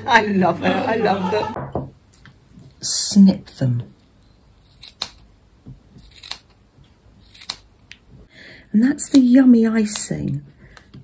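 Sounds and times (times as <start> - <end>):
small scissors snipping: 4.7 - 5.3, 6.0 - 6.6, 7.2 - 7.7.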